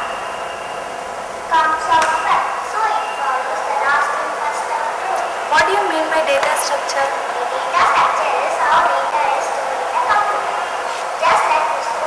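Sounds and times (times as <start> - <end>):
loudspeaker hiss: 0.0 - 12.0
voice over loudspeakers: 1.5 - 12.0.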